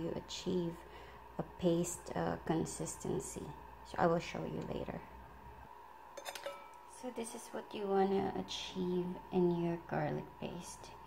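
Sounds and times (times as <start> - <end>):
faint steady hum: 0.0 - 11.0
spoon clinking on ceramic bowl: 6.2 - 6.8.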